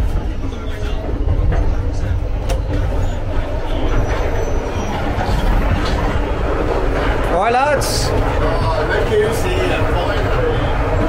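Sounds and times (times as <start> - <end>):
train rumbling on rails: 0.0 - 11.0.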